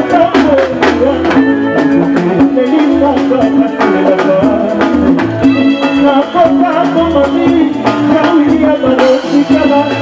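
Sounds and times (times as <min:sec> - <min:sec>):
electric guitar lines: 0:00.0 - 0:10.0
rumba band playing: 0:00.0 - 0:10.0.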